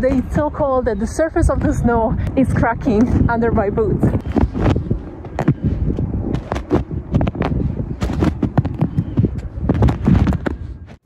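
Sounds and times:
boots crunching frozen snow: 6.3 - 9.1.

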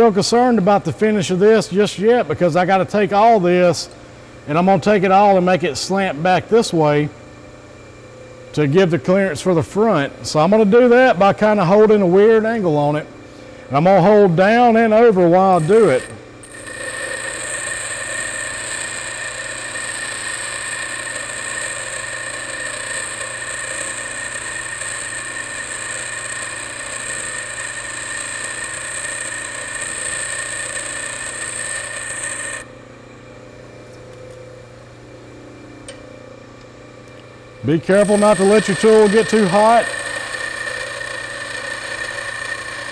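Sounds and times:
grinder motor humming: 15.2 - 32.8, 37.6 - 42.9
grinder wheel grinding metal: 15.4 - 32.7, 37.9 - 42.9.

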